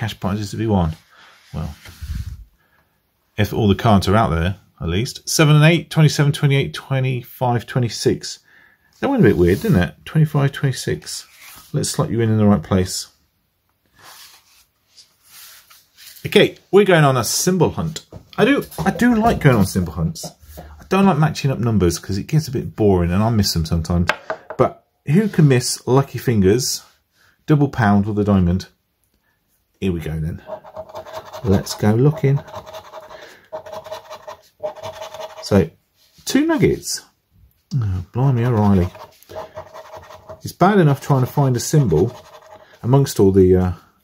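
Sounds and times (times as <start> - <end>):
scratch card being scraped: 30.5 - 35.6, 38.4 - 40.5, 41.8 - 42.8.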